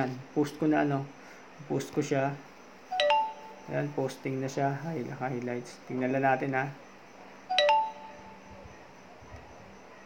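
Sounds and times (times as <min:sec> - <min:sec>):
two-note notification chime: 0:03.0 - 0:03.6, 0:07.5 - 0:08.5.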